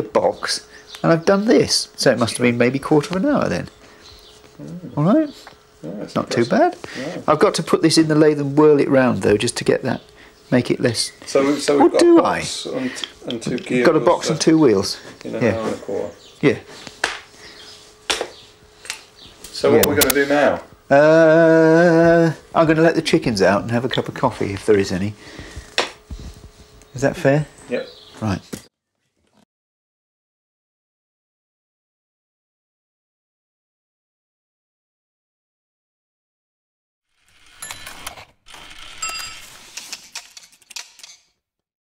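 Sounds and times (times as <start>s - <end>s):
clockwork mechanism clicking: 37.2s - 41.3s.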